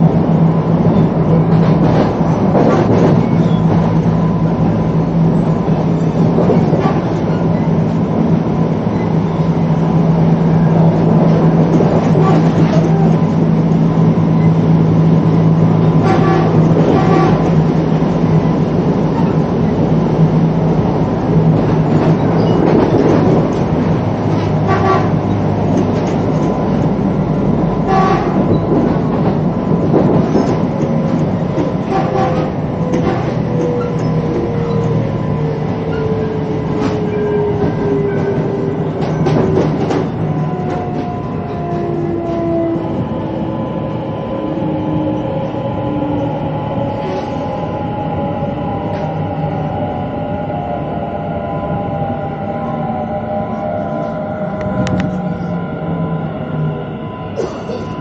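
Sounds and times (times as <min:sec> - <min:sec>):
train rolling rumble: 0:00.0 - 0:58.0.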